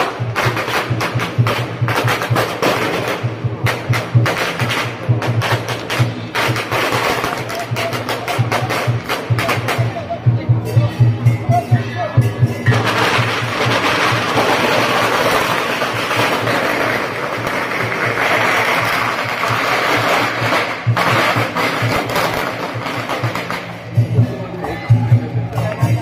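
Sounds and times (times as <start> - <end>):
firecrackers crackling: 0.0 - 11.4, 12.2 - 26.0
drum beat: 0.0 - 26.0.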